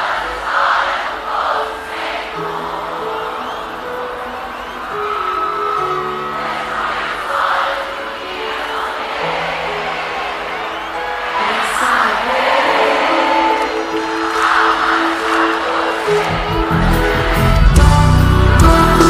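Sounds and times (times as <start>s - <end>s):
crowd cheering and shouting: 0.0s - 19.0s
live band playing chords: 13.0s - 19.0s.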